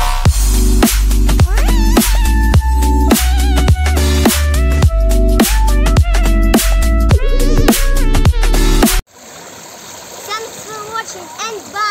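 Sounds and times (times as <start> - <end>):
girl's voice: 1.4 - 2.0, 10.3 - 11.9
pool water splashing: 9.1 - 11.9.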